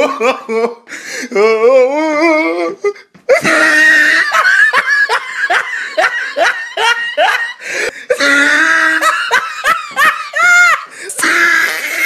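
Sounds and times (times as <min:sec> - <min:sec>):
person laughing hard: 0:00.0 - 0:00.9, 0:02.8 - 0:12.0.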